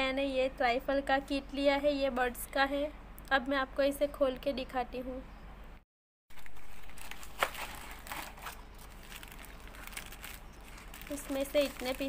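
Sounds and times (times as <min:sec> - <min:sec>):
plastic packets crinkling: 0:06.3 - 0:12.0
cardboard box being opened: 0:06.4 - 0:11.9.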